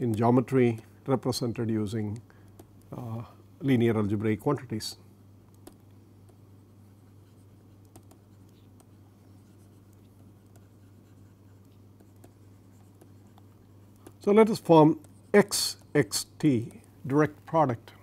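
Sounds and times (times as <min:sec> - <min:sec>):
low electrical hum: 0:00.0 - 0:18.0
stylus writing on tablet: 0:05.6 - 0:17.6.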